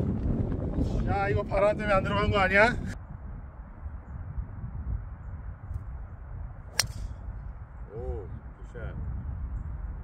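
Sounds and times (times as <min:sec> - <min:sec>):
wind rumble on microphone: 0:00.0 - 0:10.0
golf club striking ball: 0:06.7 - 0:07.2.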